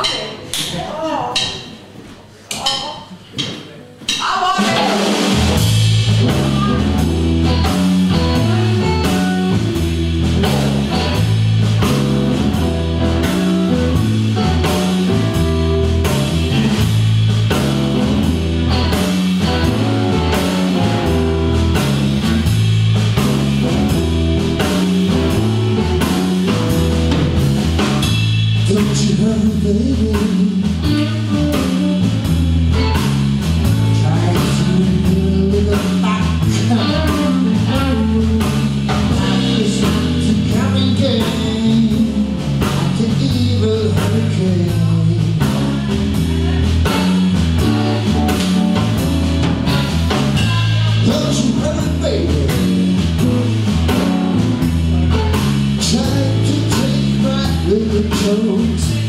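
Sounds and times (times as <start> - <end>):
blues band playing: 3.9 - 59.0
repeating bass line: 5.2 - 59.0.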